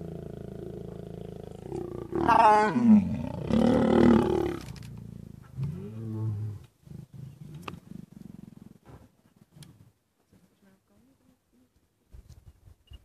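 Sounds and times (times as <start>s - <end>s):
lions growling: 0.0s - 9.0s.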